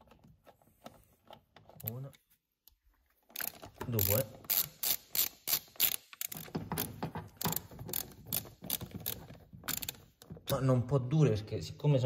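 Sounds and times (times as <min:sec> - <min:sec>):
socket ratchet clicking: 0:03.4 - 0:10.3.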